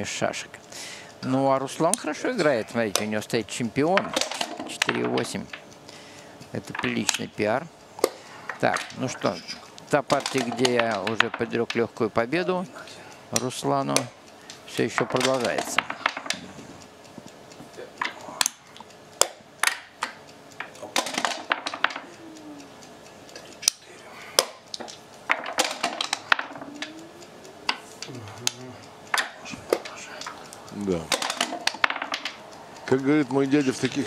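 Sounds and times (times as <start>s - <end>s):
game pieces clicking on board: 1.8s - 12.7s, 13.3s - 16.5s, 18.0s - 22.7s, 23.6s - 34.0s.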